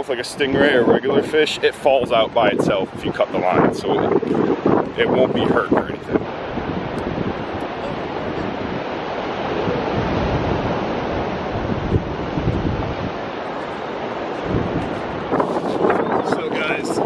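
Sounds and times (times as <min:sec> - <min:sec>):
ocean surf breaking: 0:00.0 - 0:17.0
wind rumbling on microphone: 0:00.0 - 0:17.0.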